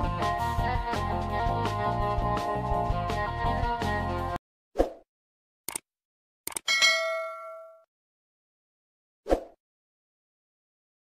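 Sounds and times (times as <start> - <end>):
bell ding: 6.7 - 7.9.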